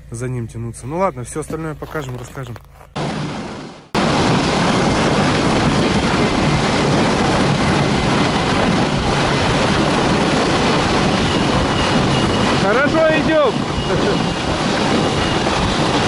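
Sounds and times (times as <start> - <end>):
sleds running over packed snow: 5.1 - 16.0
small engine running under load: 10.1 - 16.0.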